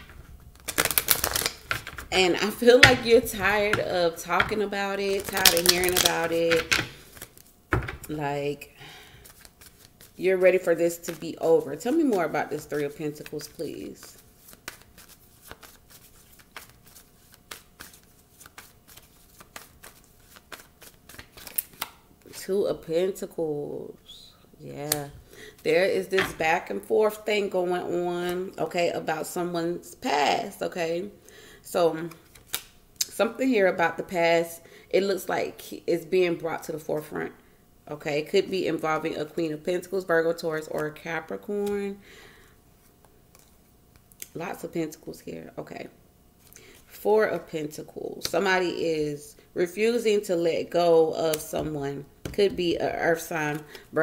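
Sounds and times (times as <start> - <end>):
cards being shuffled: 0.0 - 7.5, 9.2 - 22.0, 32.1 - 32.8.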